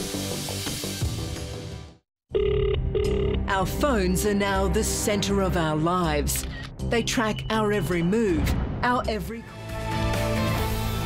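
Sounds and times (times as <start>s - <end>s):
electronic telephone ringing: 2.3s - 3.5s.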